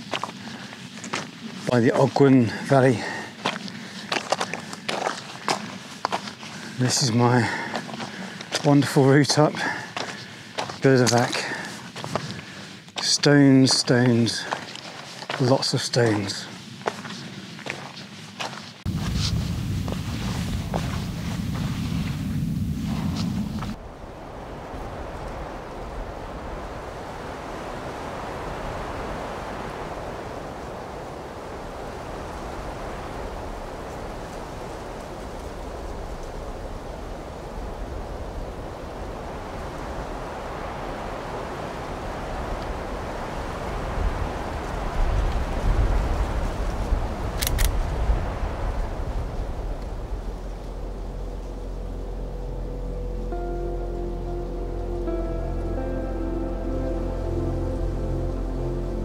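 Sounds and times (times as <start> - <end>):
wind rumbling on microphone: 16.3 - 59.0.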